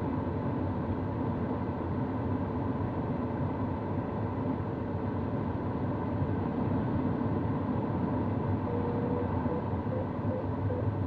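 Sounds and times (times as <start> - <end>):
variometer steady tone: 8.6 - 11.0.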